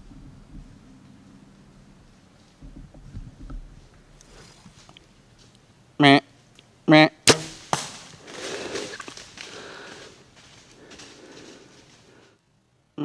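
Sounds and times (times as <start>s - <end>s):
arrow striking deer: 7.3s - 8.4s
bow firing crack: 7.3s - 9.6s
deer crashing through dry leaves: 7.3s - 12.2s.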